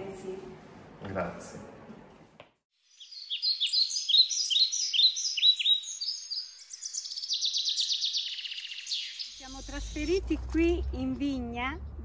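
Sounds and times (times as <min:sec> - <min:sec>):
birds chirping: 0:02.8 - 0:12.0
bird trilling: 0:02.9 - 0:11.0.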